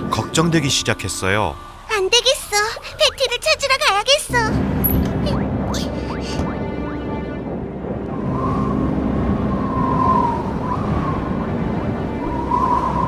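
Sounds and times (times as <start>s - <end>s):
background music: 0.0s - 13.0s
howling blizzard wind: 5.8s - 13.0s.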